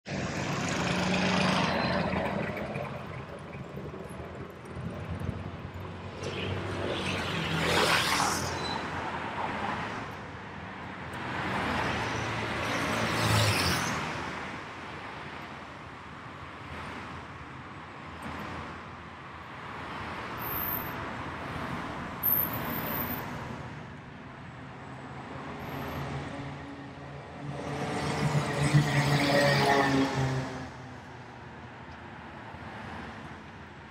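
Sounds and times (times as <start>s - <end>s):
cars passing: 0.0s - 33.9s
traffic engines and tyres: 0.0s - 33.9s.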